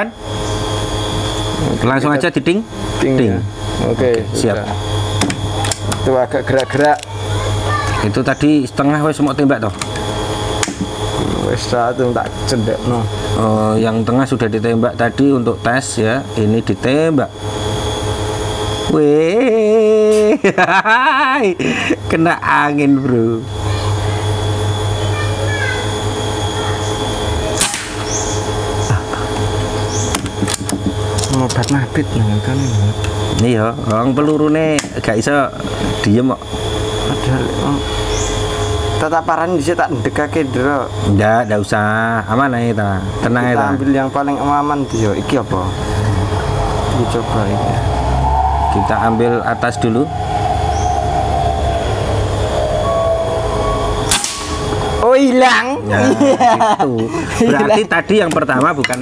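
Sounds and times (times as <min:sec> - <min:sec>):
steady low hum: 0:00.0 - 0:59.0
air rifle shot crack: 0:27.6 - 0:28.1, 0:54.1 - 0:54.6
faint falling hum: 0:41.8 - 0:58.9
wind rumble on microphone: 0:46.2 - 0:54.0.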